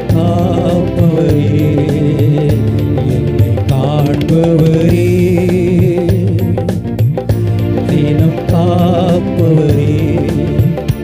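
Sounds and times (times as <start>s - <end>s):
man singing into a microphone: 0.0s - 7.1s, 7.7s - 11.0s
electronic keyboard chords: 0.0s - 11.0s
steady drum beat: 0.0s - 11.0s.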